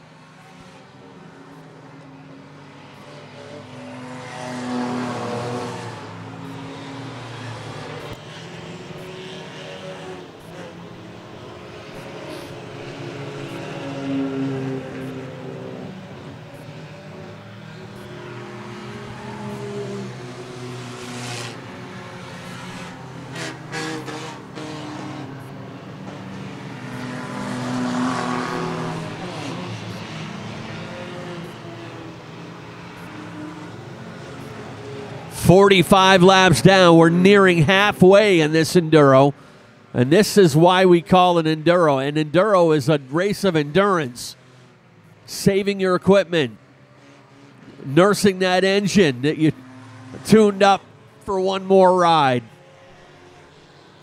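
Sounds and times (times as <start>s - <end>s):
race car engines droning: 0.0s - 54.0s.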